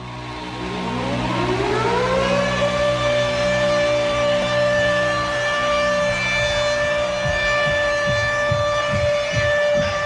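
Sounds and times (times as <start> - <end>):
siren-like electronic wail: 0.0 - 10.0
steady low drone: 0.0 - 10.0.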